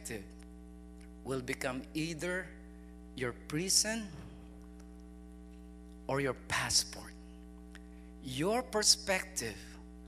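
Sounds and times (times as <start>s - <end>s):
man speaking: 0.0s - 0.3s, 1.2s - 2.6s, 3.2s - 4.5s, 6.1s - 7.2s, 8.2s - 9.8s
electrical mains hum: 0.0s - 10.0s.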